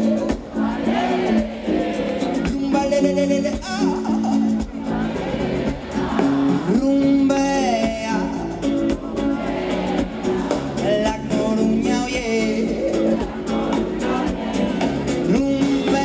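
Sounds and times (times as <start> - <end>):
person singing: 0.0 - 16.0.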